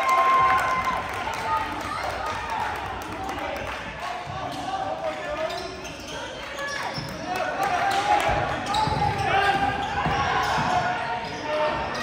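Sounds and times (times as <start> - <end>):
spectators and players talking: 0.0 - 12.0.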